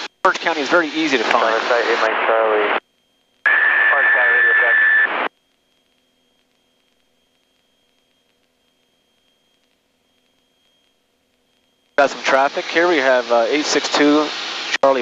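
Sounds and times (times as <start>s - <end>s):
radio voice transmission: 0.3s - 2.8s, 3.5s - 5.3s, 12.0s - 15.0s.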